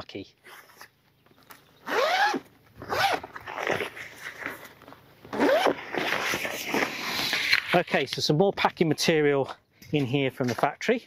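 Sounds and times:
zip being pulled open: 0.4 - 0.9, 1.8 - 7.8.

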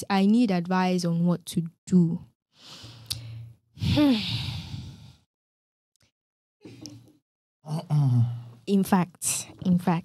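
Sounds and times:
person breathing in: 2.6 - 5.3
person sighing heavily: 3.8 - 5.2.

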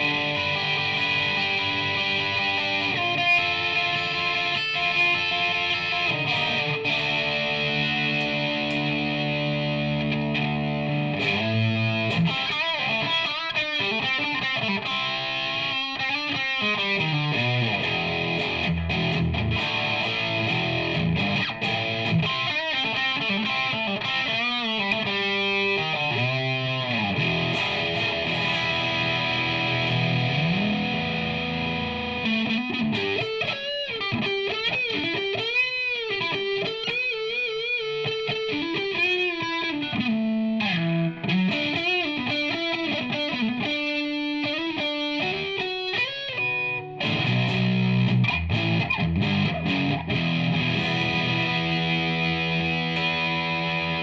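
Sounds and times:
overdriven electric guitar: 0.0 - 54.0.

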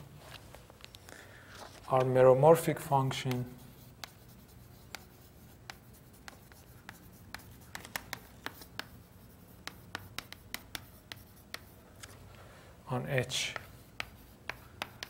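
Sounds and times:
chalk writing on chalkboard: 3.1 - 11.8, 13.3 - 15.0.

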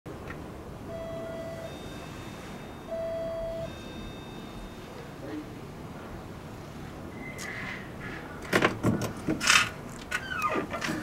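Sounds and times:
background hiss: 0.5 - 7.0
electronic beeps: 0.9 - 5.0.

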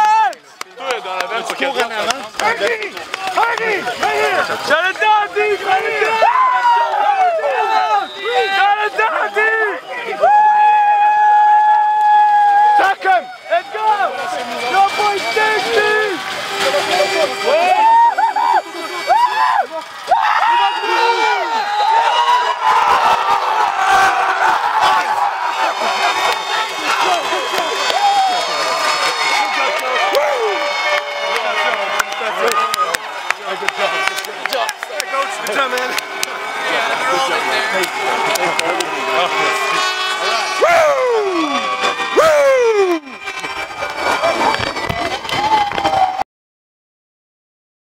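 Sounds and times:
crowd shouting and cheering: 0.0 - 46.2
jumble of voices: 0.0 - 46.2.

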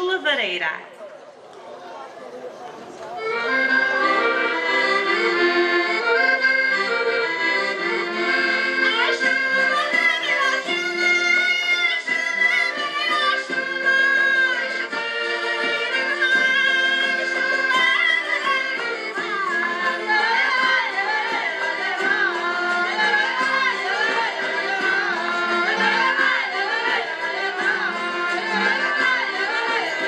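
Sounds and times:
accordion: 2.9 - 30.0
voices singing high: 3.1 - 30.0.

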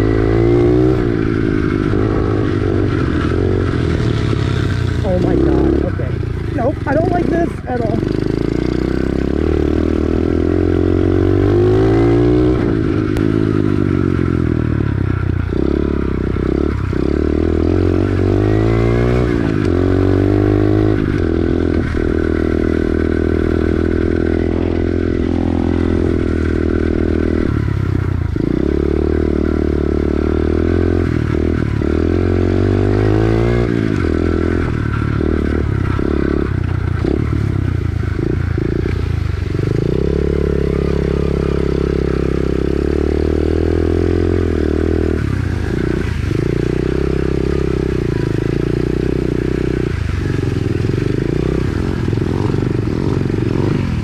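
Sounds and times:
motorbike engine revving: 0.0 - 54.0.

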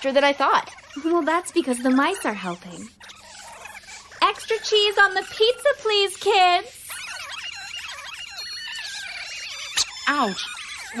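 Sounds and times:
mice squeaking and chittering: 0.0 - 11.0.

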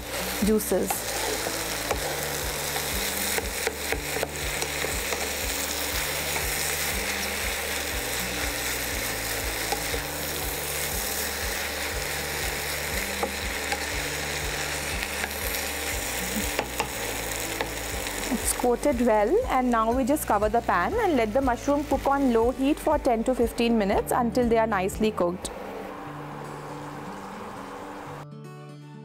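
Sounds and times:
vegetables sizzling in a pan: 0.0 - 24.2.

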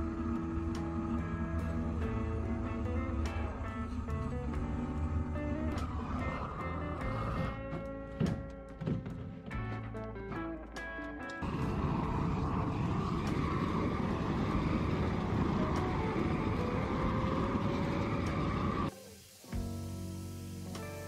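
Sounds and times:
propane burner roaring: 0.0 - 7.8, 11.4 - 21.0
background music: 0.0 - 21.0.

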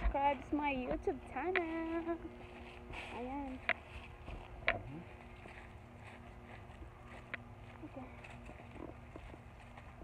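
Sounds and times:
footsteps on dry leaves: 1.4 - 10.0.

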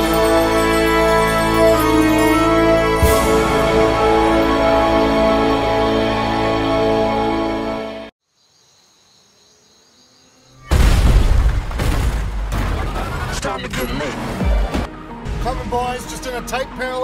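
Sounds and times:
film score music: 0.0 - 8.1, 11.4 - 17.0
action trailer sound effects: 10.6 - 15.8.

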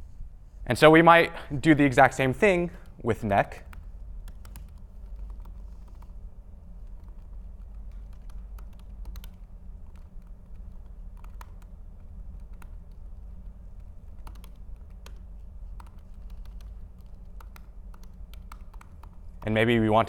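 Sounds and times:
steady low hum: 0.0 - 20.0
laptop keyboard typing: 2.4 - 19.7.

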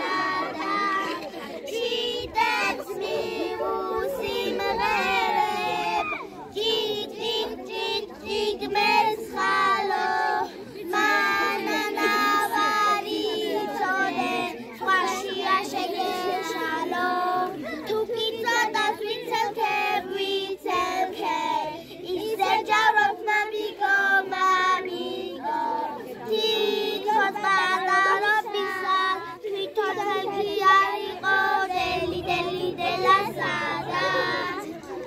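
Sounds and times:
girls singing: 0.0 - 35.0.

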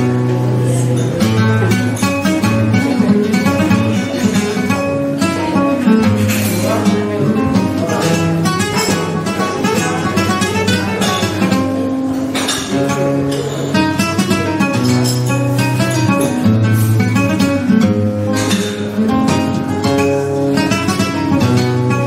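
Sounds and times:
flamenco guitar: 0.0 - 22.0.

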